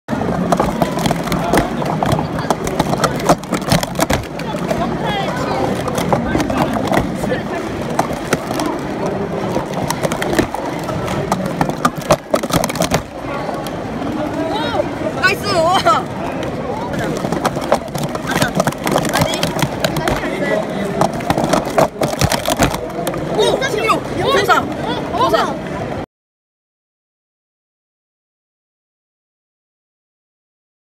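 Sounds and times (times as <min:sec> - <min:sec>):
crowd chatter in a hall: 0:00.1 - 0:26.0
plastic cups clacking: 0:00.2 - 0:13.8, 0:16.9 - 0:23.7.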